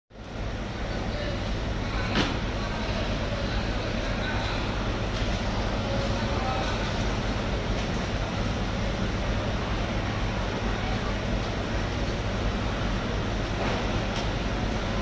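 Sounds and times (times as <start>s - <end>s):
steady low hum: 0.1s - 15.0s.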